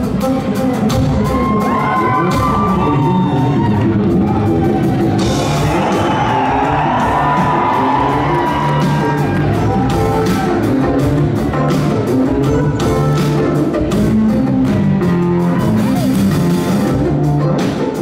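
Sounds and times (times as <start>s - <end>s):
live funk band playing: 0.0s - 18.0s
audience whooping and yelling: 1.1s - 11.4s.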